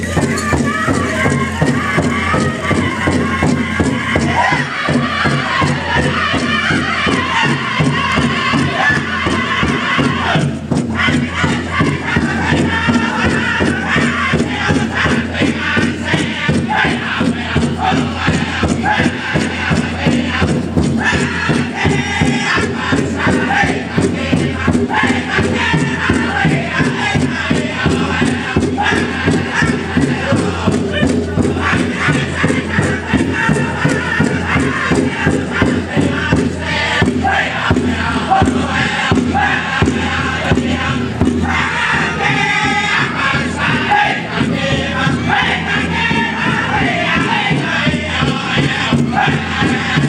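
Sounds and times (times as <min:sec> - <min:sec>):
big drum steady beat: 0:00.0 - 0:50.0
group singing in chorus: 0:00.0 - 0:50.0.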